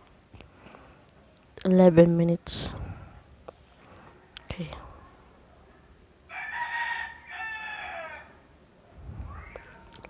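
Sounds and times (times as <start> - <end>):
fowl crowing: 6.3 - 8.4.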